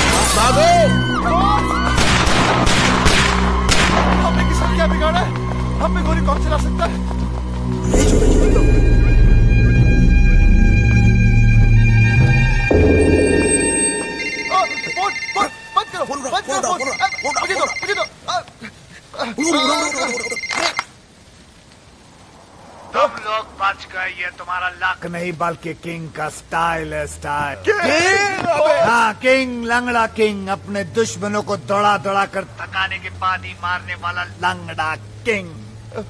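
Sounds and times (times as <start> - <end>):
film music score: 0.0 - 18.9
sharp cracks: 1.9 - 4.4
phone ringing trill: 12.6 - 18.2, 19.6 - 20.9
hushed overlapping voices: 22.9 - 29.3, 30.2 - 36.0.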